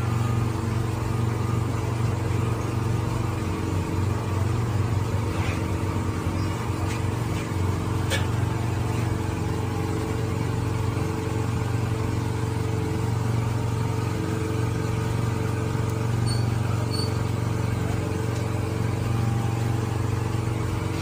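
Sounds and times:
mechanical drone with deep hum: 0.0s - 21.0s
short high beeps: 16.2s - 17.2s.

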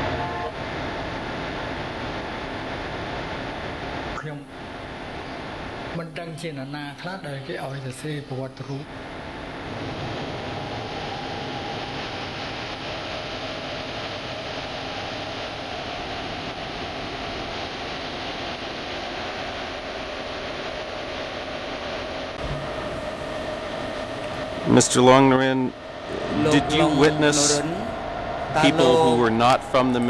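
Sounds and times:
faint wavering whine: 0.0s - 30.0s
steady hiss: 0.0s - 30.0s.

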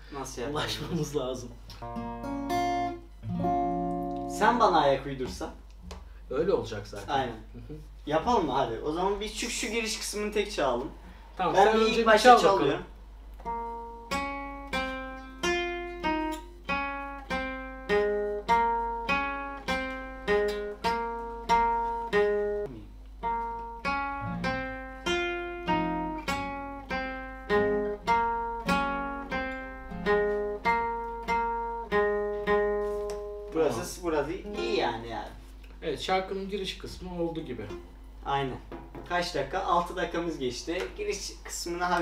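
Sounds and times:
acoustic guitar melody: 0.6s - 5.4s, 11.0s - 39.3s.

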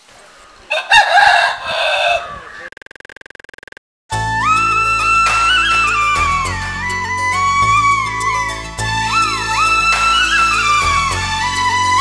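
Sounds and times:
rooster crowing: 0.7s - 2.7s.

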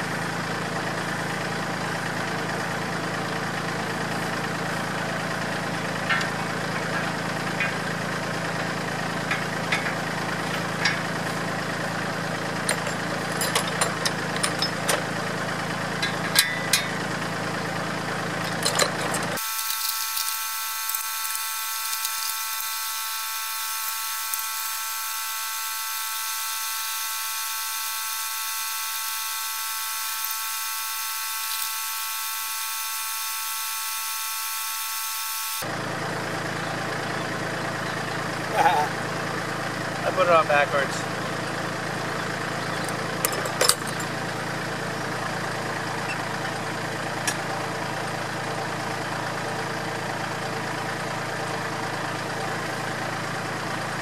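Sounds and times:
tractor engine idling: 0.0s - 27.9s, 35.6s - 54.0s
steady high whine: 0.0s - 50.2s
metal clicks and clanks: 6.0s - 8.0s, 9.2s - 11.3s, 12.6s - 15.1s, 16.0s - 17.0s, 18.4s - 19.4s, 42.8s - 44.1s.

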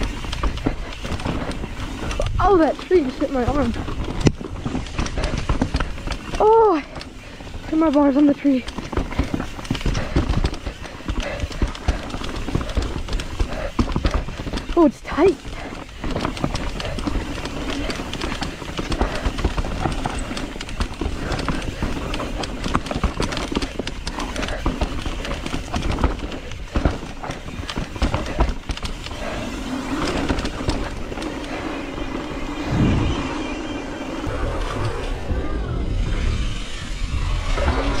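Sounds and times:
bike rattling over bumps: 0.0s - 38.0s
bike tyres rolling over dirt: 0.0s - 38.0s.

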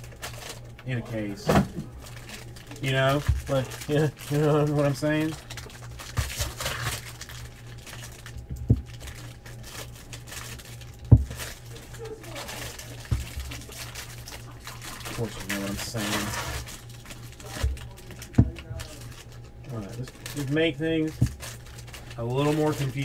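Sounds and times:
card pack wrappers crinkling: 0.0s - 23.0s.

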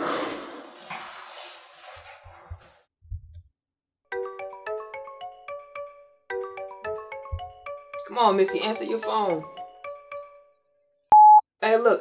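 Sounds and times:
phone ringtone marimba melody: 4.1s - 10.5s.

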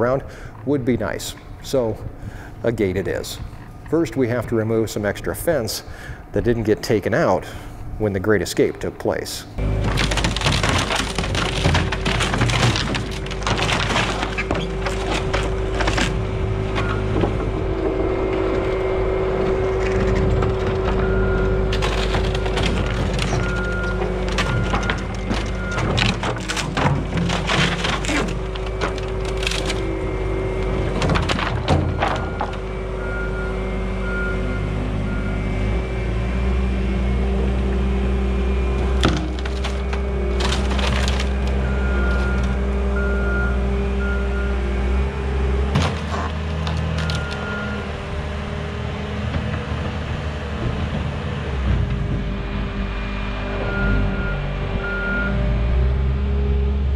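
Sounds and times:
diesel loader engine under load: 0.0s - 8.2s, 9.4s - 56.9s
wooden boards cracking and splintering: 9.6s - 33.3s, 37.9s - 44.4s, 45.0s - 51.9s
backup alarm beeping: 15.5s - 17.4s, 20.8s - 28.1s, 31.8s - 35.7s, 41.5s - 45.1s, 47.0s - 47.9s, 53.6s - 55.4s.

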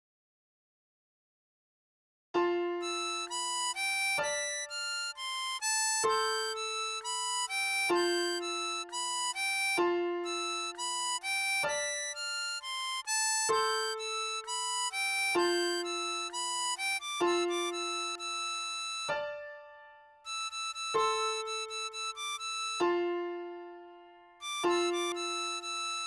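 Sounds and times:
harmonica melody: 2.4s - 26.0s.

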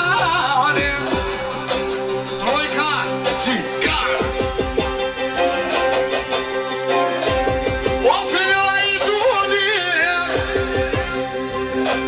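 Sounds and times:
man singing through microphone: 0.0s - 1.5s, 2.4s - 4.4s, 8.0s - 10.7s
live band music: 0.0s - 12.0s.

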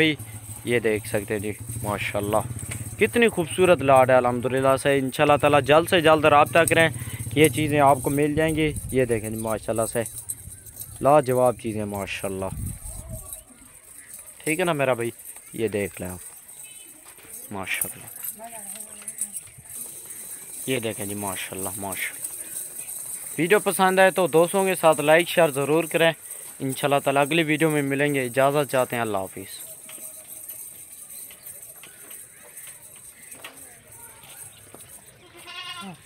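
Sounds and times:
goat bleating: 35.2s - 36.0s.

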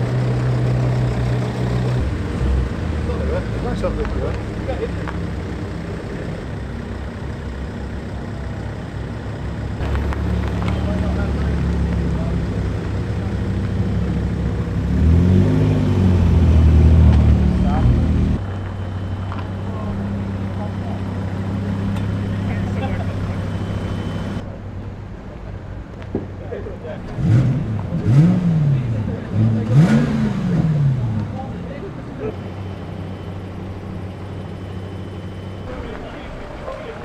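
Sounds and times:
car engines running slowly: 0.0s - 37.0s.

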